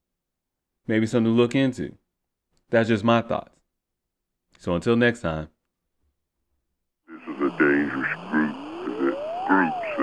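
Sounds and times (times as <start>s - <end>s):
short pitched voice-like calls: 7.1s - 10.0s.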